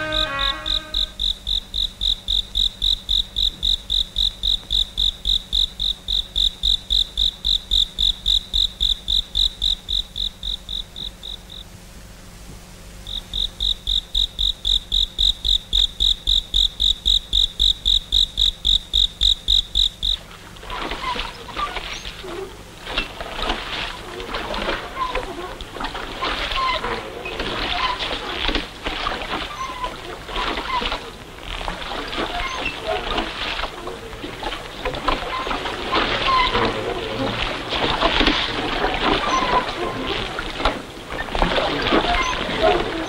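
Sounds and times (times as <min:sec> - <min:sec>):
water splashing and sloshing: 0:00.0 - 0:10.8, 0:19.2 - 0:43.0
cricket chirping: 0:00.0 - 0:11.7, 0:13.0 - 0:36.7.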